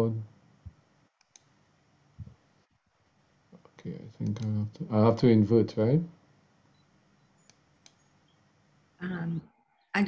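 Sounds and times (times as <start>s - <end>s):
computer mouse clicks: 1.2s - 1.5s, 4.2s - 4.6s, 6.8s - 8.1s.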